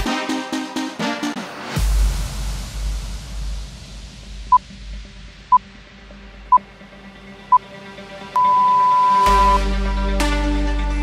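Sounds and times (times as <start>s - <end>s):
faint electronic music: 5.5s - 11.0s
short electronic beeps: 8.4s - 9.6s.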